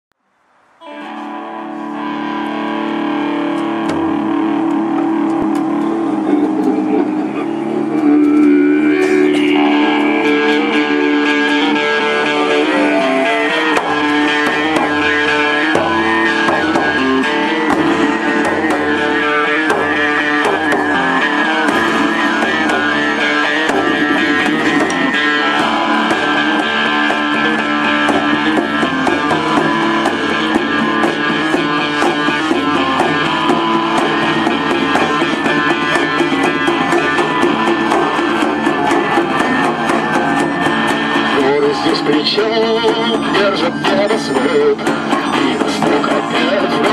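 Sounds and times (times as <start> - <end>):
electric guitar: 0.8 - 46.9
low beat: 1.0 - 46.9
hand drums: 3.5 - 6.0, 8.4 - 46.9.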